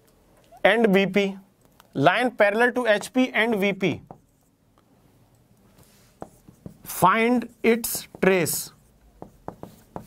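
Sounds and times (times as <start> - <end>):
marker writing on whiteboard: 2.7 - 4.6, 5.7 - 10.0
marker tapping: 2.9 - 3.3, 3.9 - 4.5, 6.2 - 7.0, 7.7 - 10.0.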